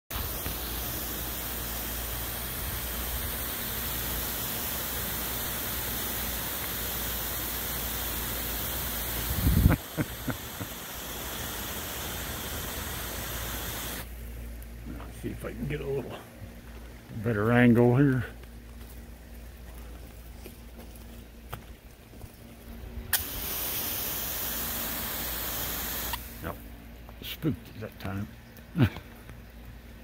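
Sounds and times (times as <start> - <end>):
fine water spray hissing: 0.1 - 14.2, 23.1 - 26.6.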